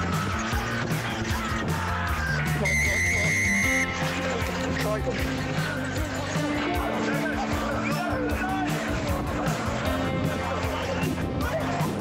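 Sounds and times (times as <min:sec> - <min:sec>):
music with steady bass line: 0:00.0 - 0:12.0
long shrill whistle blast: 0:02.6 - 0:03.8.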